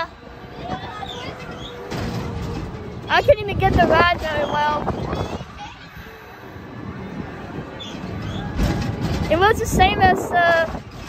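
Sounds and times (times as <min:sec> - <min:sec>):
distant voices: 0:00.0 - 0:11.0
fairground background hum: 0:00.0 - 0:11.0
wind on microphone: 0:00.0 - 0:11.0.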